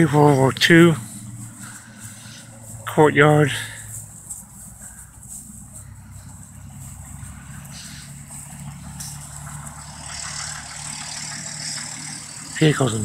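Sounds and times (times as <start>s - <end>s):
low engine hum: 0.0s - 13.0s
road noise: 0.0s - 13.0s.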